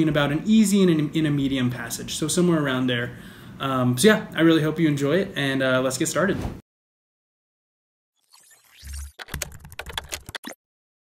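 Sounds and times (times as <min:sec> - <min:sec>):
computer keyboard typing: 0:09.1 - 0:10.6.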